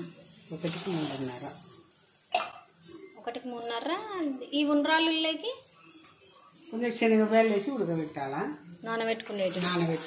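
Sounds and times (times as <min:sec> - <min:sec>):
woman talking: 0:03.2 - 0:05.7.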